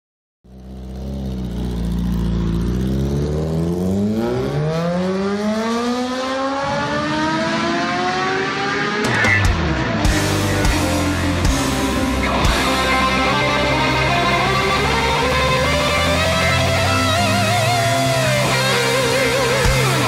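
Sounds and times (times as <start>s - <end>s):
motorcycle engine revving: 0.5s - 20.0s
rock song: 9.0s - 20.0s.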